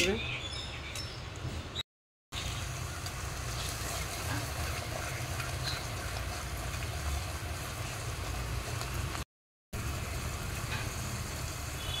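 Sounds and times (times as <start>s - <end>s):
food sizzling in oil: 2.4s - 9.2s, 9.8s - 12.0s.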